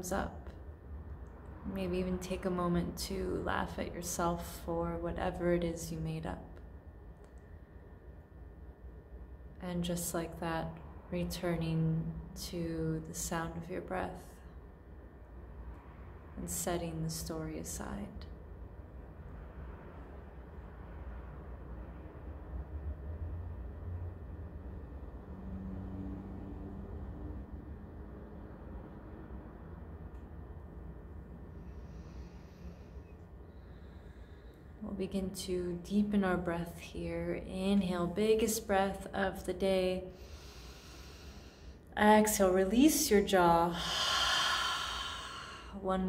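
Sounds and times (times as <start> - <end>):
faint hum: 0.0 - 46.0
low background rumble: 0.0 - 46.0
woman breathing in deeply: 31.5 - 34.8, 40.1 - 41.9, 43.8 - 45.8.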